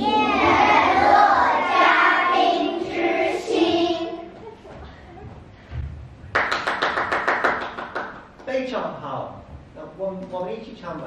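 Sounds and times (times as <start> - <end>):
hand clapping: 6.3 - 8.6.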